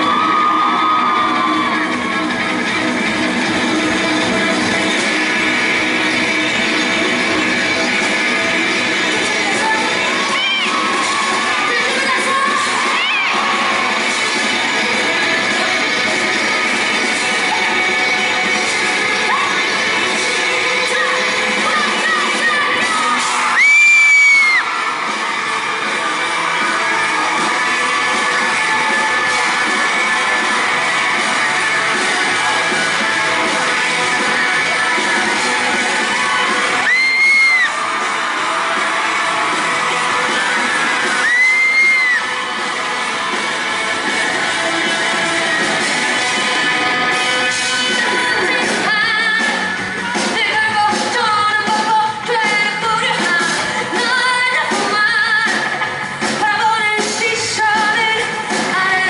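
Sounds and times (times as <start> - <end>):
audience cheering and whooping: 0.0 - 52.2
live rock band playing: 0.0 - 59.0
loud high-pitched scream: 36.6 - 37.9.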